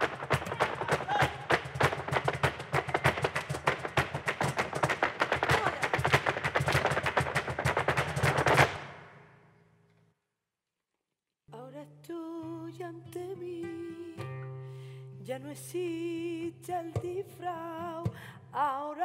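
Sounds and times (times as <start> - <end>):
shoes stamping on stage floor: 0.0 - 9.1.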